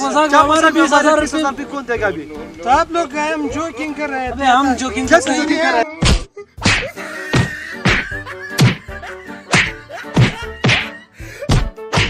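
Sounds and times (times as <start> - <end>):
background music: 0.0 - 12.0
heavy punches landing: 6.0 - 8.9, 9.5 - 12.0.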